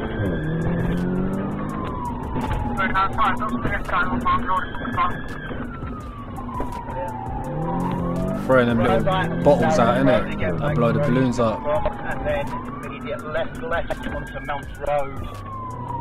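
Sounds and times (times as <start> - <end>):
car engine accelerating: 0.0 - 16.0
police siren wailing: 0.0 - 16.0.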